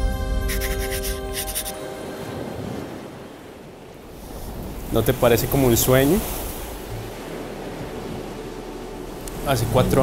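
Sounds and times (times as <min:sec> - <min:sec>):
ocean surf washing onto beach: 0:00.5 - 0:10.0.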